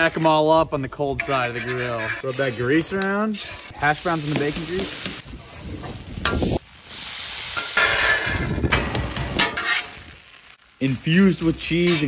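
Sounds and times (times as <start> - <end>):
metal spatula scraping griddle: 1.0 - 6.6, 7.5 - 10.6, 11.4 - 12.0
hash browns sizzling on griddle: 1.4 - 12.0.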